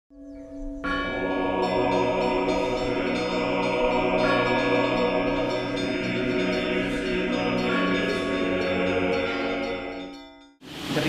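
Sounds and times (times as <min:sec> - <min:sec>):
church bells: 0:00.1 - 0:10.6.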